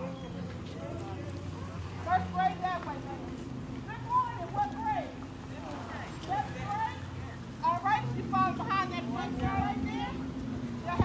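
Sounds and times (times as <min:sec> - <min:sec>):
car engine humming slowly passing: 0:00.0 - 0:11.0
faint voices talking: 0:00.0 - 0:11.0.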